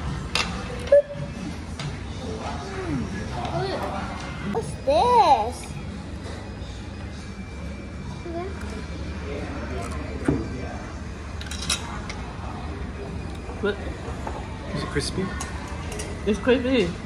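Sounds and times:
cutlery clicks: 11.4s - 12.0s.

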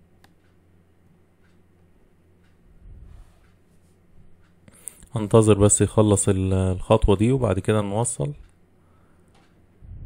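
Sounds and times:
steady low hum: 0.0s - 10.0s
person speaking: 4.8s - 8.5s.

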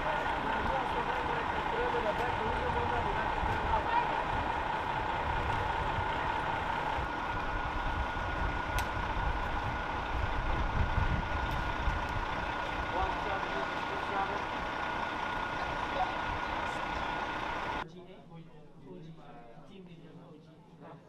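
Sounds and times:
faint voices: 0.0s - 7.2s
bus engines idling: 0.0s - 17.8s.

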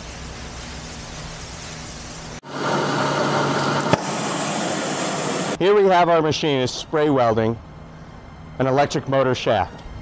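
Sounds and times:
welding torch hissing: 0.0s - 5.6s
low machine hum: 2.4s - 5.6s.

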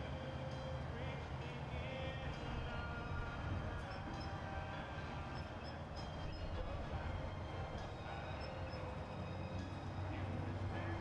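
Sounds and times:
faint constant tones: 0.0s - 11.0s.

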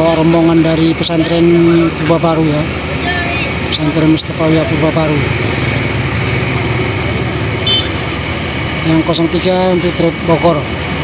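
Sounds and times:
vehicle engines rumbling: 0.0s - 11.0s
motor scooter passing: 1.4s - 8.8s.

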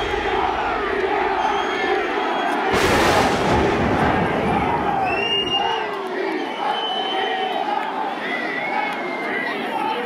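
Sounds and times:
stadium crowd shouting and cheering: 0.0s - 10.0s.

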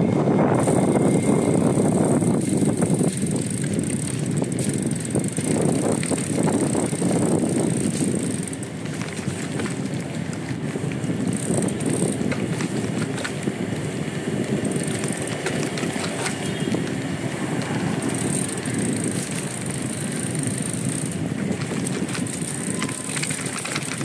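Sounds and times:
bike rattles and clicks: 0.0s - 24.0s
bike tyre and road rumble: 0.0s - 24.0s.

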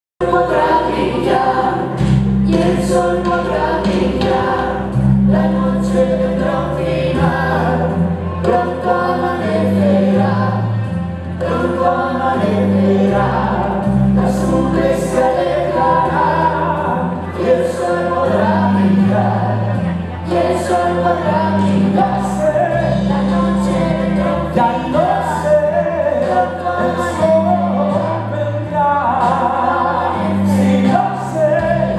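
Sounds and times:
choir singing: 0.2s - 31.9s
sustained bass notes: 0.2s - 31.9s.

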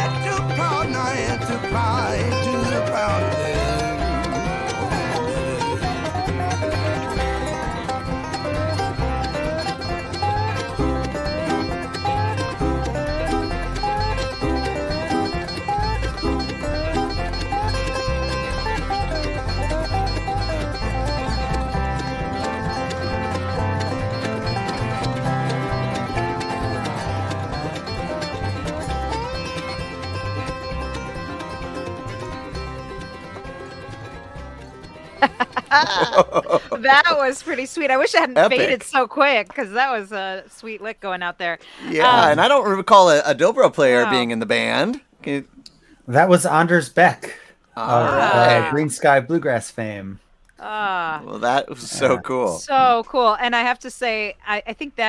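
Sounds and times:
bluegrass string band with dobro: 0.0s - 40.1s, 41.6s - 46.6s, 47.3s - 49.2s, 50.7s - 53.8s.

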